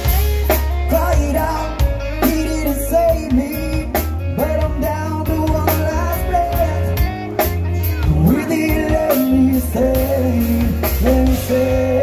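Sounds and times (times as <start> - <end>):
bass and electric guitars: 0.0 - 12.0
drum kit beat: 0.0 - 12.0.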